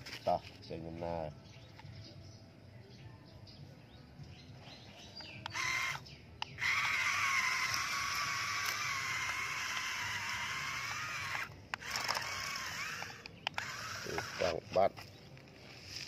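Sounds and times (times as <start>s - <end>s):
toy truck electric motor whining: 5.4s - 14.8s.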